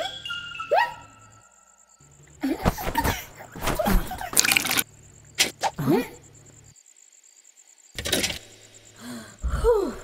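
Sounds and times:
quiet cartoon soundtrack: 0.0 - 3.4
crickets chirping: 0.0 - 10.0.

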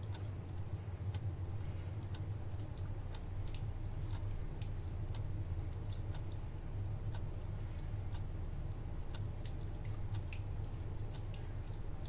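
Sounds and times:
steady low hum: 0.0 - 12.0
water dripping: 0.0 - 12.0.

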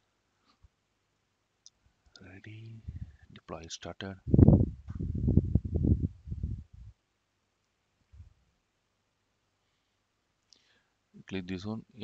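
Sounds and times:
man speaking softly: 2.2 - 4.3, 11.2 - 12.0.

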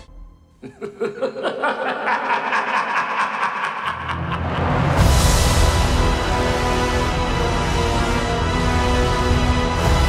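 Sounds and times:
theme music: 0.0 - 10.0
rhythmic cackling laugh: 0.6 - 5.0.

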